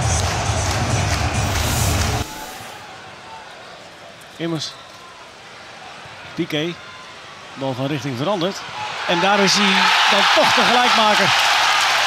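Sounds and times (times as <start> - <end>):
quiet stadium background: 0.0 - 12.0
stadium crowd cheering: 0.0 - 12.0.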